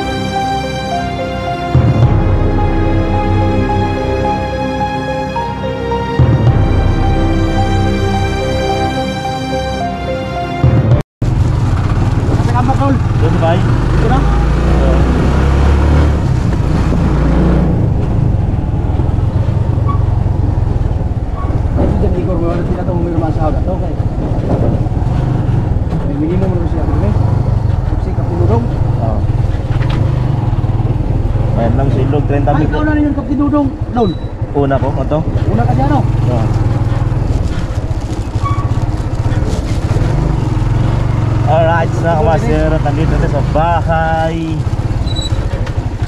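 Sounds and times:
motorcycle engine running: 0:11.2 - 0:46.0.

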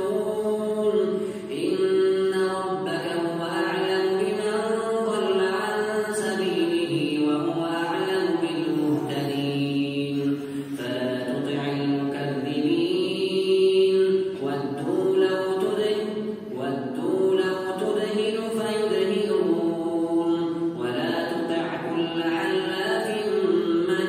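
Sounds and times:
man reciting melodically through microphone: 0:00.0 - 0:24.0.

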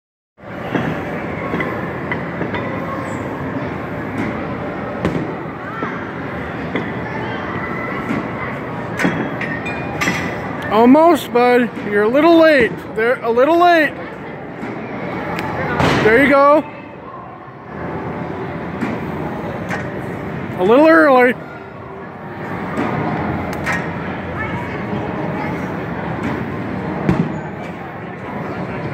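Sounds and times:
indoor batting cage din: 0:00.4 - 0:28.9.

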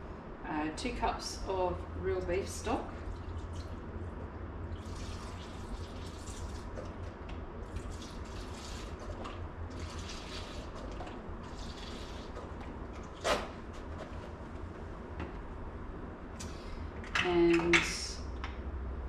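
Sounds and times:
steady low hum: 0:00.0 - 0:19.0
liquid pouring and splashing: 0:03.1 - 0:03.8, 0:04.7 - 0:12.6.

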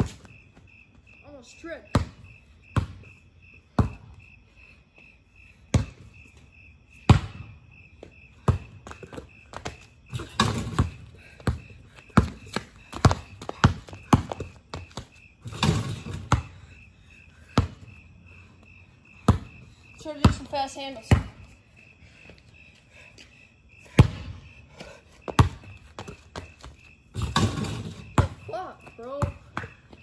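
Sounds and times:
crickets chirping: 0:00.0 - 0:30.0
basketball bouncing on concrete: 0:01.8 - 0:04.2, 0:05.7 - 0:06.2, 0:06.9 - 0:16.8, 0:17.4 - 0:18.1, 0:19.2 - 0:21.6, 0:23.8 - 0:30.0.

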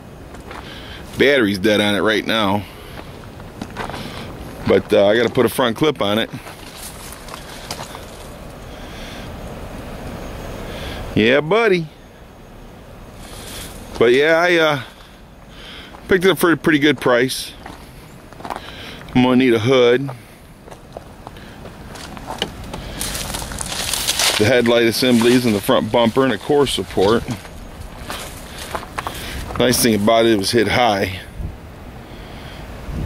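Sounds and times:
footsteps on gravel: 0:00.3 - 0:08.4, 0:13.2 - 0:30.4
wind on microphone: 0:31.2 - 0:31.9, 0:32.7 - 0:33.0.

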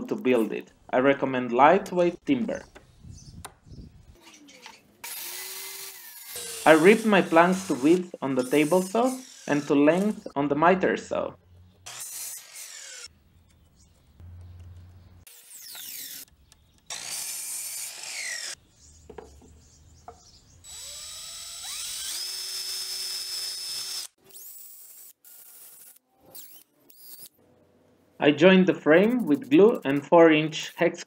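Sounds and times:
workshop noise: 0:01.8 - 0:20.6
miter saw cutting wood: 0:05.0 - 0:10.3, 0:11.9 - 0:13.1, 0:15.3 - 0:16.3, 0:16.9 - 0:18.6, 0:20.6 - 0:26.0
power drill running: 0:05.0 - 0:10.3, 0:11.9 - 0:13.1, 0:16.9 - 0:18.6, 0:20.6 - 0:25.9.

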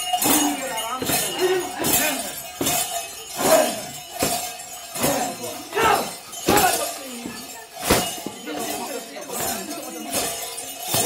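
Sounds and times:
people shouting: 0:00.0 - 0:08.3
sharp metallic clashing strikes: 0:00.0 - 0:11.0.

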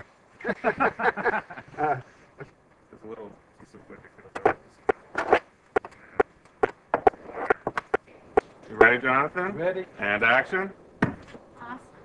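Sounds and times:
sharp knocks and clicks: 0:04.3 - 0:09.0.

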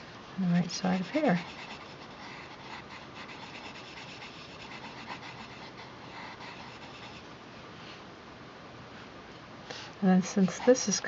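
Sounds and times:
pencil scratching on paper: 0:00.8 - 0:07.2.

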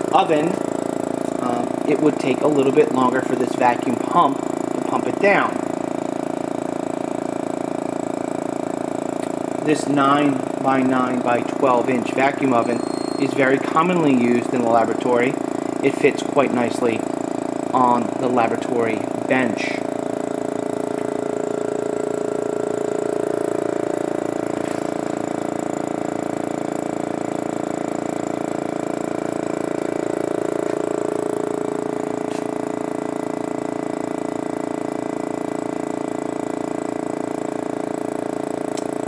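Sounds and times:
vacuum pump humming with fast pulse: 0:00.0 - 0:39.0.

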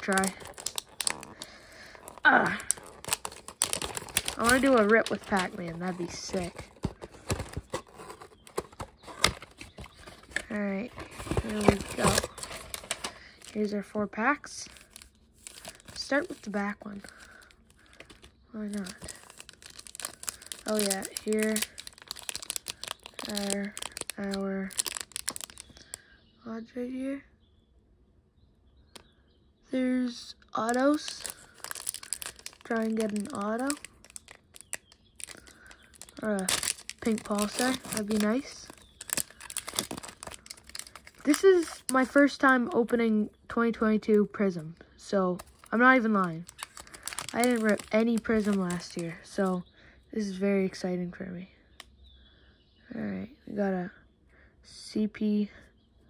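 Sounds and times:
clicks and crackles: 0:00.0 - 0:13.6, 0:17.0 - 0:26.0, 0:30.6 - 0:43.0, 0:45.4 - 0:49.0
foil wrapper crinkling: 0:00.0 - 0:13.8, 0:14.4 - 0:26.0, 0:30.6 - 0:43.0, 0:45.4 - 0:49.5.

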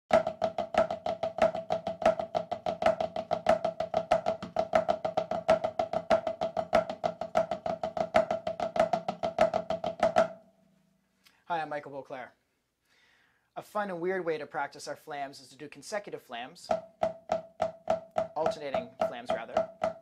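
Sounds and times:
drum played in fast strokes: 0:00.1 - 0:10.4, 0:16.6 - 0:20.0.

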